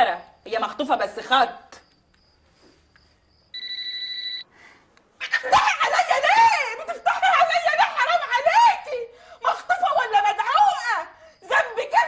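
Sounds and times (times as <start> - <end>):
faint high beeps: 3.5 - 4.5
phone ring tone: 3.5 - 4.5
woman speaking loudly: 5.7 - 12.0.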